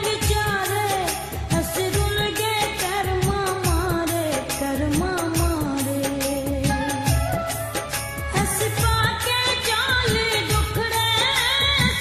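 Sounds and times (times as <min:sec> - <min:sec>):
steady drum beat: 0:00.0 - 0:12.0
woman singing: 0:00.0 - 0:12.0.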